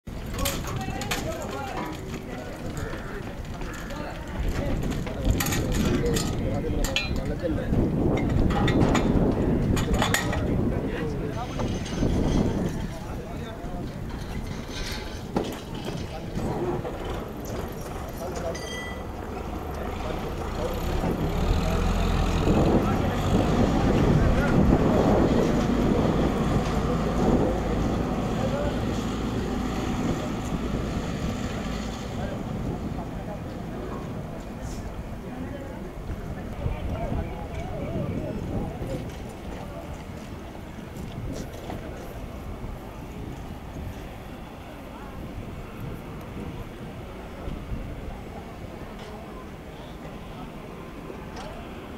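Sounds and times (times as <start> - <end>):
low outdoor rumble: 0.1 - 51.9
people talking: 0.1 - 51.9.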